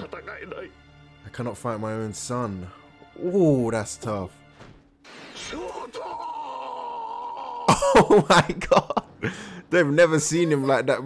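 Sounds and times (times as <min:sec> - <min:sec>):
man's loud exclamation: 0:05.4 - 0:08.2
man's anguished cry: 0:05.4 - 0:08.5.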